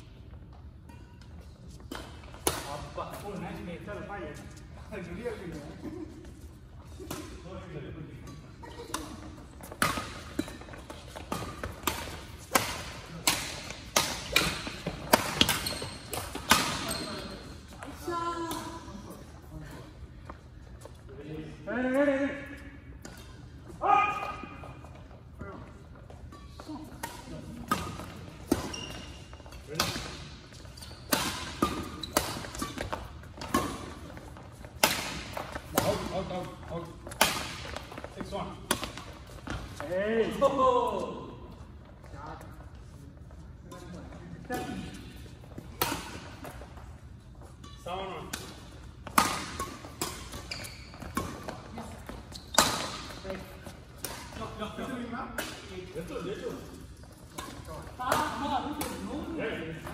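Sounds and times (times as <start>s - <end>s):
rackets hitting shuttlecock: 0.8s - 3.3s, 8.3s - 18.9s, 26.2s - 39.8s, 44.5s - 54.6s, 57.2s - 59.9s.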